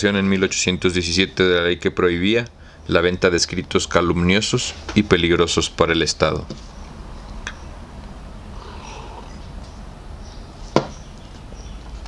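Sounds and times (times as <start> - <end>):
faint steady background noise: 0.0 - 12.0.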